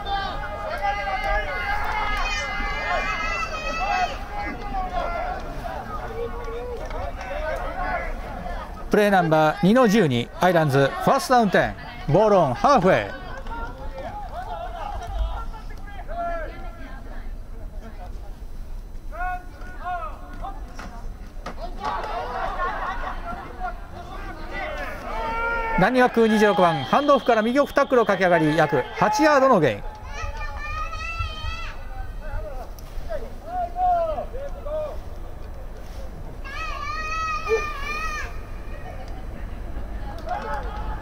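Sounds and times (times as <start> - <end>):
people shouting: 0.0 - 8.6, 21.6 - 32.6, 36.4 - 39.0.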